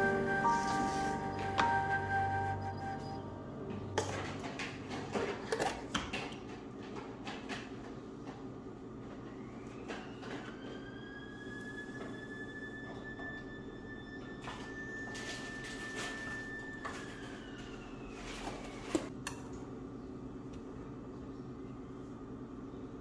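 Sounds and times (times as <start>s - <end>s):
thin whistling tone: 0.0s - 3.5s.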